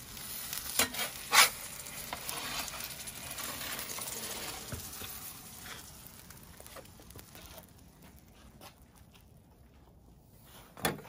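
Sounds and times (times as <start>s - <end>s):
fire hissing and crackling: 0.0s - 10.8s
metal peel scraping stone: 0.8s - 2.7s.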